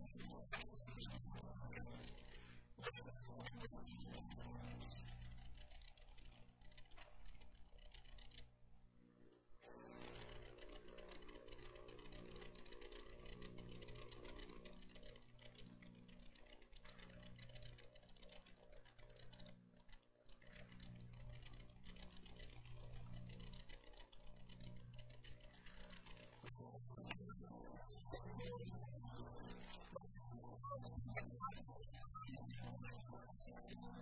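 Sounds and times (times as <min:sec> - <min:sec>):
low steady hum: 0:00.0 - 0:05.6, 0:26.4 - 0:34.0
faint even ticking: 0:26.5 - 0:34.0.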